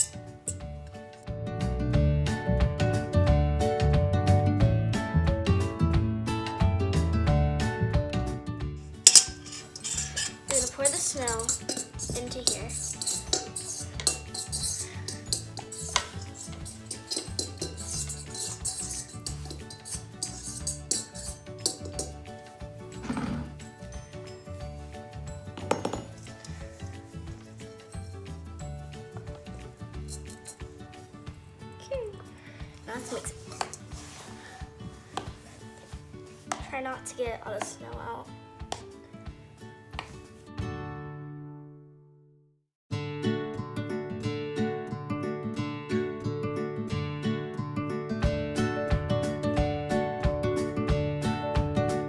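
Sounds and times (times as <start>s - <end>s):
cutlery scraping mixing bowls: 0.0s - 0.7s, 8.9s - 24.6s, 25.5s - 28.4s, 29.0s - 31.0s, 33.0s - 36.7s
background music: 0.0s - 41.8s, 42.9s - 52.0s.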